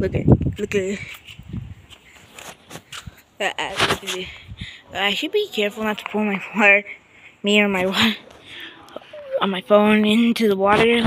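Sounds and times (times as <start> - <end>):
faint footsteps: 0.4 - 9.2.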